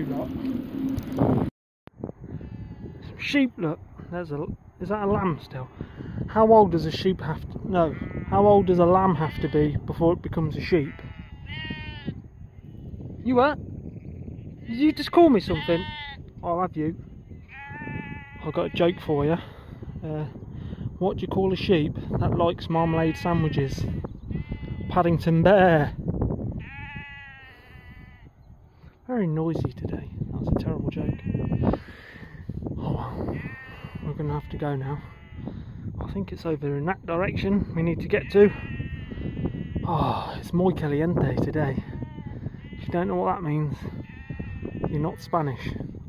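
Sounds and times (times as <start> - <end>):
sheep bleating: 7.7 - 9.8, 10.6 - 12.9, 14.0 - 16.3, 17.4 - 19.5, 22.7 - 25.0, 26.6 - 28.3, 31.0 - 31.9, 33.1 - 35.6, 38.2 - 40.1, 41.8 - 43.0, 43.9 - 45.6.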